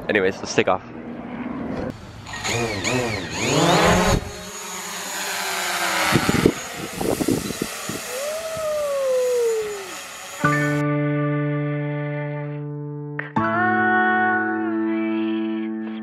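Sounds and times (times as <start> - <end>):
drone propellers whirring: 0.9 - 10.8
whine sliding down in pitch: 3.2 - 10.8
music with held chord: 10.4 - 15.8.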